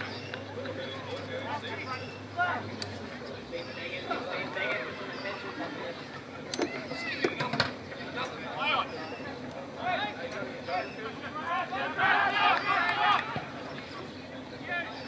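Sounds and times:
players and spectators shouting: 0:00.0 - 0:02.7, 0:08.0 - 0:15.0.

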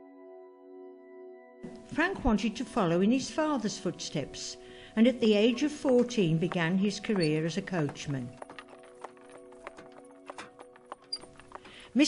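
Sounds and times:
horse hooves clip-clopping: 0:05.0 - 0:12.0.

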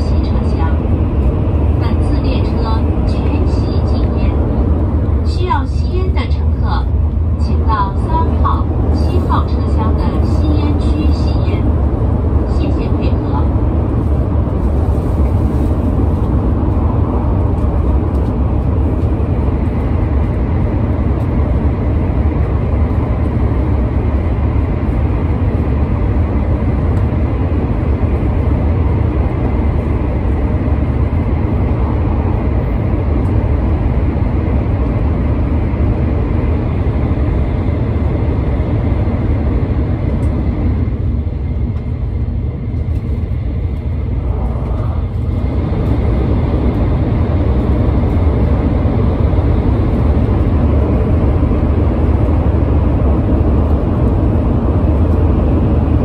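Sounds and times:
train cabin low rumble: 0:00.0 - 0:56.0.

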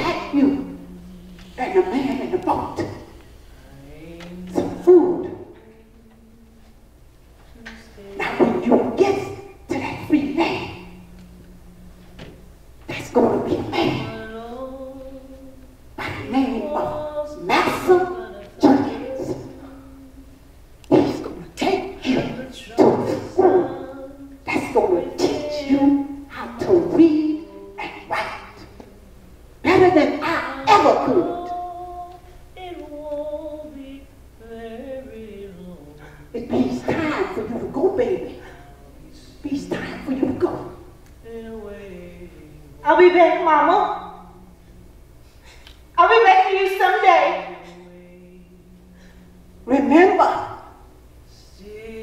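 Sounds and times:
woman speaking into headset microphone: 0:00.0 - 0:00.8, 0:01.6 - 0:03.1, 0:07.6 - 0:11.0, 0:12.9 - 0:14.7, 0:16.0 - 0:19.6, 0:20.9 - 0:28.9, 0:29.6 - 0:31.6, 0:36.4 - 0:44.3, 0:46.0 - 0:48.2, 0:49.6 - 0:50.7
faint steady hum: 0:00.0 - 0:52.0.

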